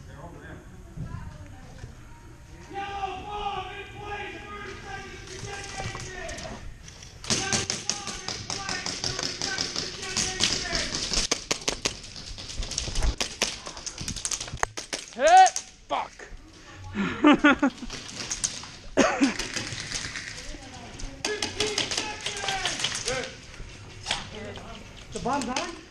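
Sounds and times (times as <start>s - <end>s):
distant shouting voices: 2.5s - 6.7s, 21.2s - 23.7s
airsoft guns firing: 7.2s - 12.4s, 13.1s - 15.2s, 17.8s - 20.6s, 21.2s - 23.4s.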